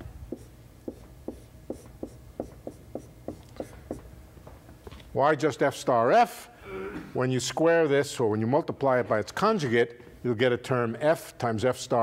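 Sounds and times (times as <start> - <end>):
writing taps on a board: 0.3 - 4.0.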